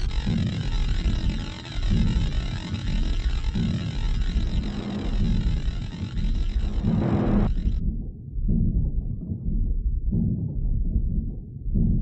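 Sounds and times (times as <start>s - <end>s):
muffled industrial techno rumble: 0.0s - 12.0s.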